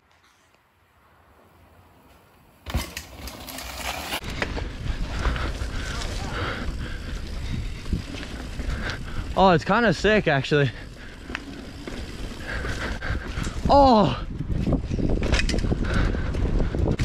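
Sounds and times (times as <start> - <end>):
bike tyres rolling on dirt: 1.1 - 17.0
bike chain and frame rattle: 2.6 - 17.0.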